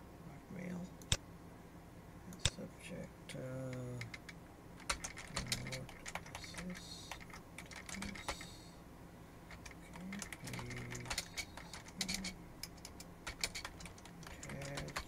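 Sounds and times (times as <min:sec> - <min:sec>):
computer keyboard typing: 0:03.6 - 0:08.6, 0:09.5 - 0:15.0.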